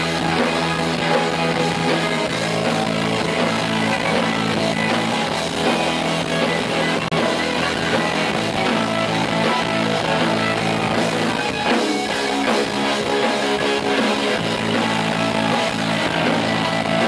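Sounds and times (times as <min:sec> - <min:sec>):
electric guitar: 0:00.0 - 0:17.0
live rock band: 0:00.0 - 0:17.0.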